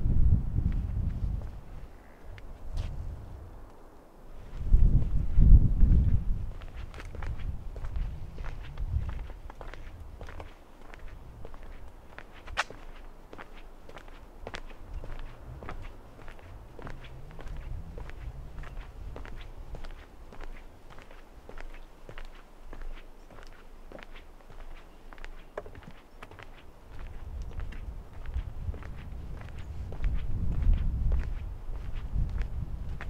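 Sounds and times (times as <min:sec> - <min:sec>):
footsteps on wooden boardwalk: 0:00.6 - 0:03.0, 0:05.9 - 0:33.0
low rumble: 0:04.4 - 0:10.2, 0:14.9 - 0:20.3.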